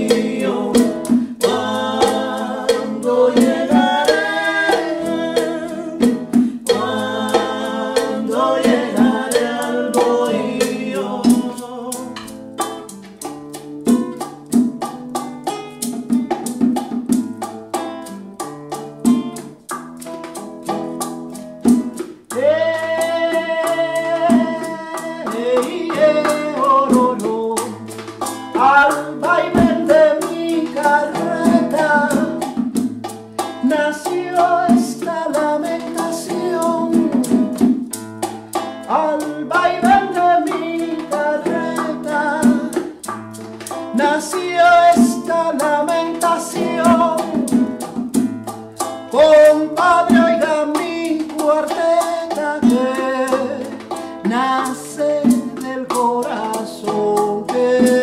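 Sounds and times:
woman singing: 0.0 - 12.2, 33.7 - 37.6
bongos: 0.0 - 58.0
nylon-string acoustic guitar: 0.0 - 58.0.

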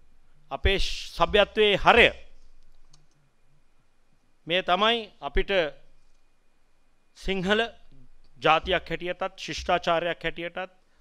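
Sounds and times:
man speaking into a microphone: 0.5 - 2.2, 7.2 - 7.8, 8.4 - 10.7
faint clicks: 2.4 - 3.2.

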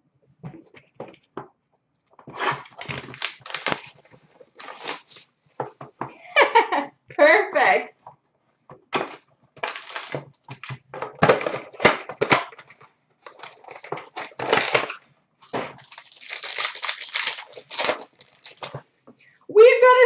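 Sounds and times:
wrapper rustling: 2.3 - 5.3, 9.6 - 12.6, 13.2 - 15.0, 15.7 - 18.8
cardboard and foil tearing: 2.4 - 5.3, 9.6 - 12.6, 13.2 - 15.0, 15.7 - 18.8.

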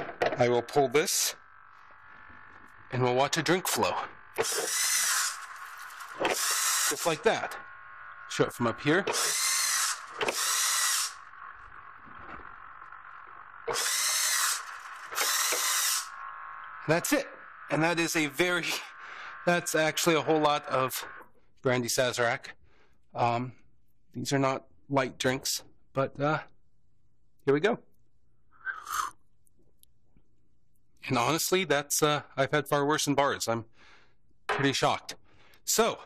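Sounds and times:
faint steady hum: 0.0 - 36.0
servo motors whining: 1.1 - 21.0
person slurping from glass: 28.7 - 29.2.

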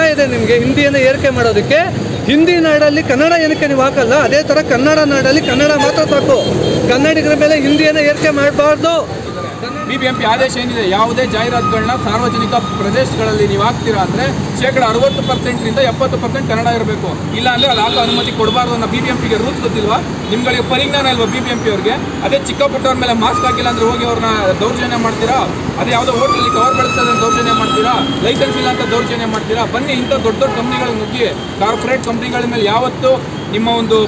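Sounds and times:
man speaking in raised voice: 0.0 - 15.7
man speaking: 0.0 - 34.0
street traffic noise: 0.0 - 34.0.

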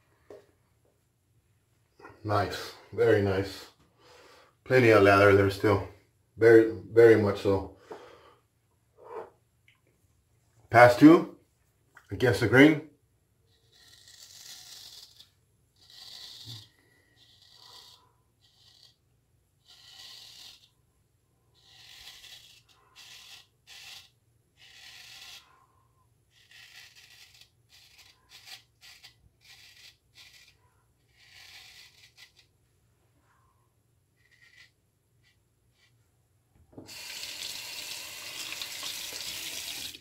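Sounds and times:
razor scraping stubble: 13.5 - 20.8, 21.5 - 25.7, 26.3 - 32.5, 34.2 - 36.0.

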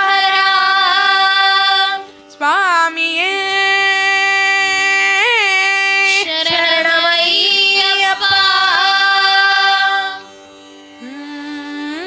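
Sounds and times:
woman singing devotional song: 0.0 - 10.4, 11.0 - 12.0
harmonium drone: 0.0 - 12.0.

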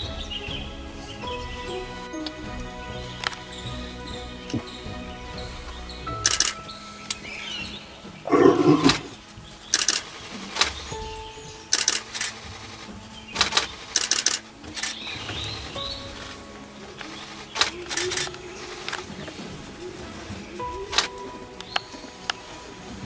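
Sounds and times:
camera shutters clicking: 6.3 - 6.6, 9.8 - 10.8, 11.8 - 12.4, 13.4 - 15.0.

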